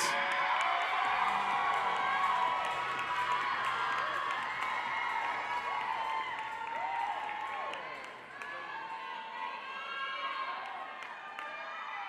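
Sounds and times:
scattered clapping: 0:00.0 - 0:08.6.

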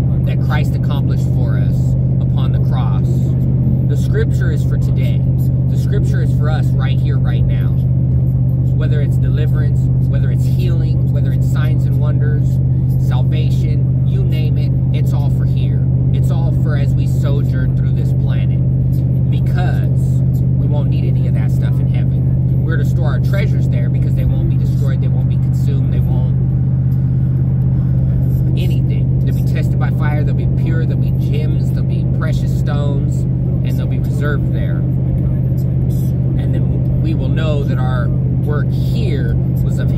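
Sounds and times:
man talking: 0:00.0 - 0:07.9, 0:08.7 - 0:26.5, 0:27.7 - 0:39.9
vehicle cabin road and engine drone: 0:00.0 - 0:39.9.

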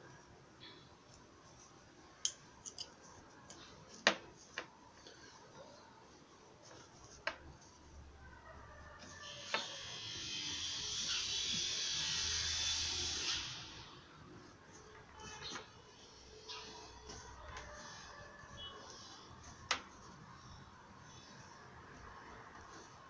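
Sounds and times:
pliers clicking on metal trim: 0:02.2 - 0:02.9.

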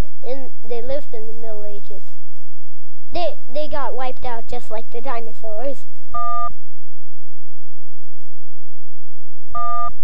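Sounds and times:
short electronic beeps: 0:06.2 - 0:06.5, 0:09.6 - 0:10.0.

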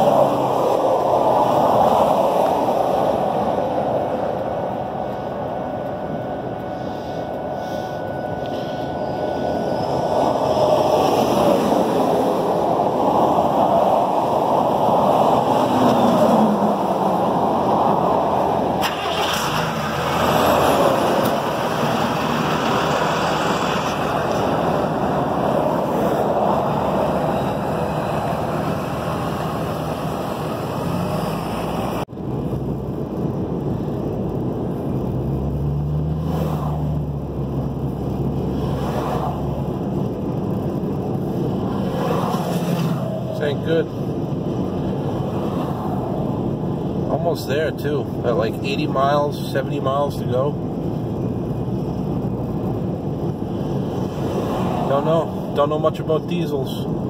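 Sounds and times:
car engine drone from inside: 0:00.0 - 0:54.2
vehicles passing by: 0:00.0 - 0:57.0.

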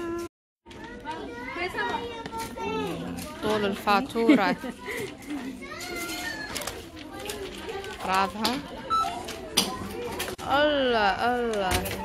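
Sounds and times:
children talking excitedly: 0:00.0 - 0:12.0.

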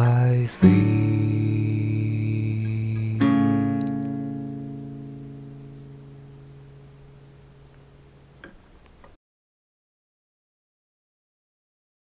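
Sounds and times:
acoustic guitar chord ringing: 0:00.0 - 0:08.4.

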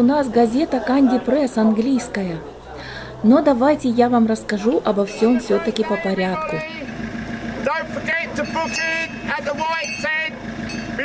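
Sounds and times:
car engines idling: 0:00.0 - 0:11.0
person speaking outdoors: 0:00.0 - 0:11.0.

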